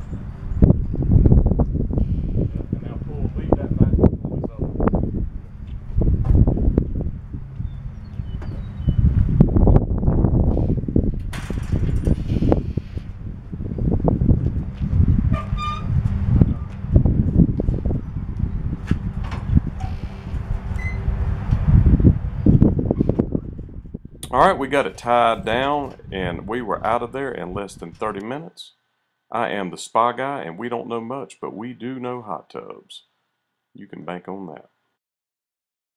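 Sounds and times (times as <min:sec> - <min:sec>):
wind buffeting microphone: 0:00.0 - 0:28.2.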